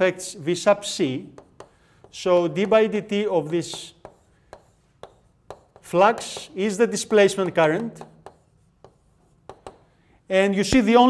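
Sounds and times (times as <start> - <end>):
chalk tapping on blackboard: 1.2 - 10.0.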